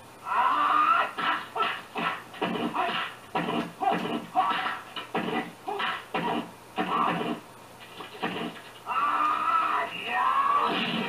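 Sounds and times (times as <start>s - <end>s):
long drawn-out cry: 0.2s - 1.2s, 8.9s - 10.8s.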